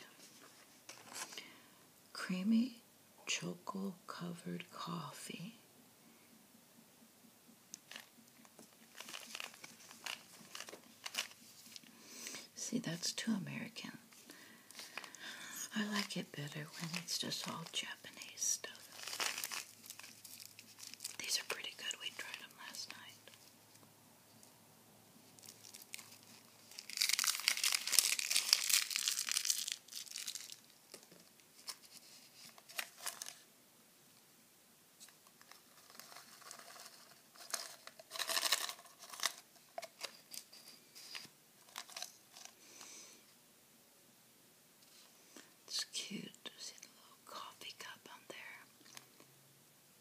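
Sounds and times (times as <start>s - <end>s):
wrapper crinkling: 7.9s - 11.9s, 14.1s - 23.5s, 25.2s - 33.5s, 35.0s - 42.6s
wrapper ripping: 7.9s - 11.9s, 15.9s - 23.4s, 25.3s - 33.4s, 35.3s - 40.5s, 41.1s - 42.6s.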